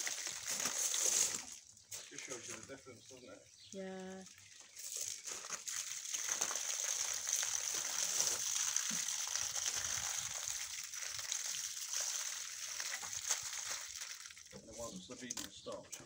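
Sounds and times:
water splashing on brickwork: 0.0s - 2.7s, 4.3s - 14.8s.

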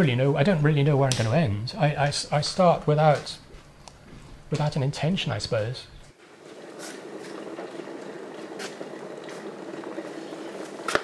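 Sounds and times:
electric kettle boiling water: 6.2s - 11.0s.

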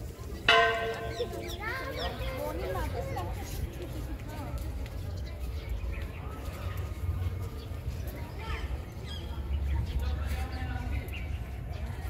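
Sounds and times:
voices talking: 0.0s - 12.0s
temple bell ringing: 0.5s - 2.0s.

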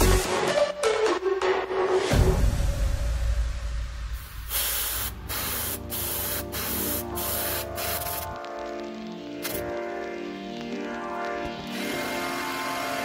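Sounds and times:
airbrush spraying hiss: 4.2s - 8.3s.

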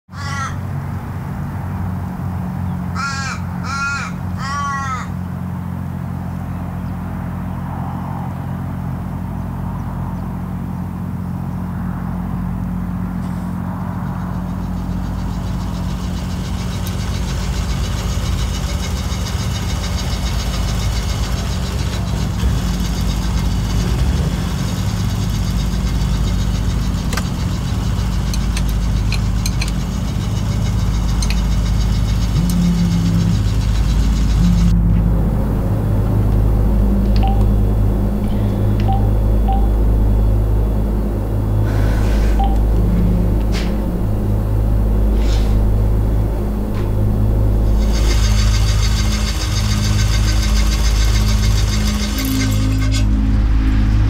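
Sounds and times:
crows cawing: 0.1s - 0.8s, 2.7s - 5.6s
steady low hum: 0.5s - 54.0s.

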